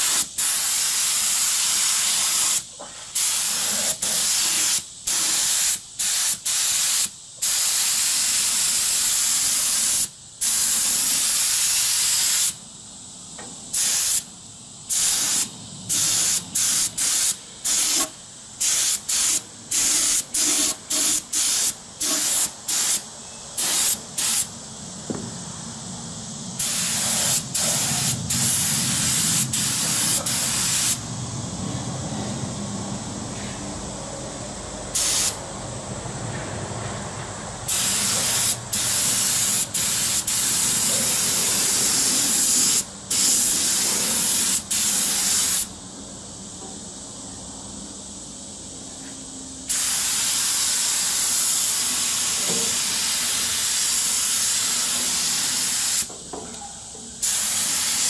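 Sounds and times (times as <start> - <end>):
paint spray gun hissing: 0.0 - 12.6, 13.4 - 25.2, 26.5 - 31.0, 34.9 - 35.4, 37.7 - 45.7, 49.6 - 56.1, 57.2 - 58.0.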